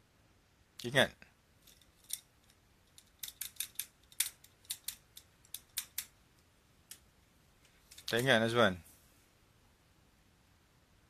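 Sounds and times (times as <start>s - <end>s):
person speaking a word: 8.1s - 8.9s.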